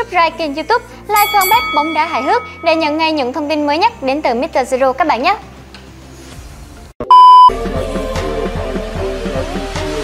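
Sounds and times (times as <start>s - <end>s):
background music with steady beat: 0.0s - 4.7s, 5.4s - 10.0s
loud test tone beep: 7.0s - 7.6s.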